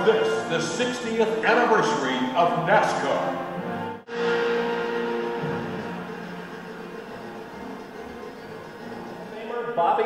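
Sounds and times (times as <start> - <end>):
sustained music chord: 3.3 - 9.4.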